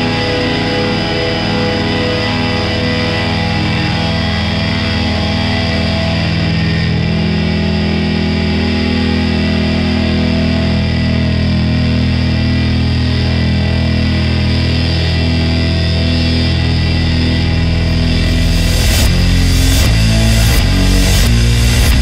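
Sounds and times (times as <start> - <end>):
distorted electric guitars chords: 0.0 - 22.0.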